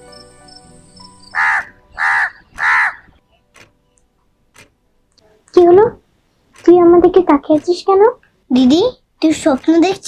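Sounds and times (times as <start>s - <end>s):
soft music: 0.0s - 5.8s
bird calling loudly: 0.1s - 3.2s.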